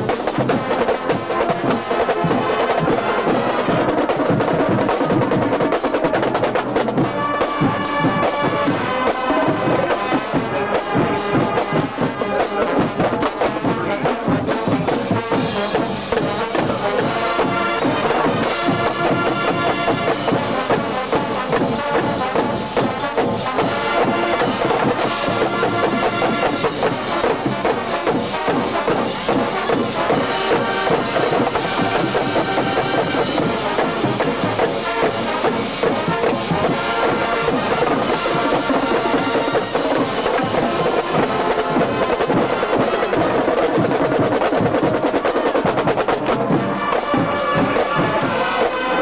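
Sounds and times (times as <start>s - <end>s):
drumline beat: 0.0s - 49.0s
flutes and horns: 0.0s - 49.0s
marching band brass: 0.0s - 49.0s.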